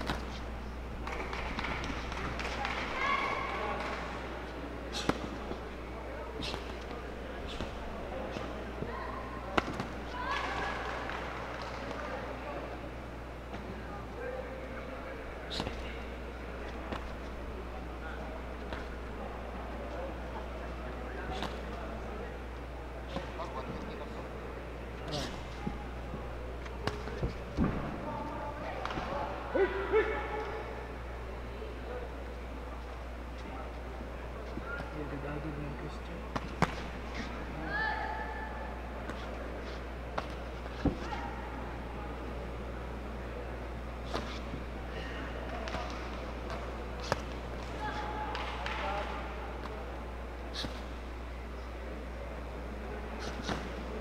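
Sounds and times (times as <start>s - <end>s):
hall background noise: 0.0s - 54.0s
steady low hum: 0.0s - 54.0s
voices shouting around ring: 1.7s - 54.0s
people hooting shouts: 2.7s - 3.8s.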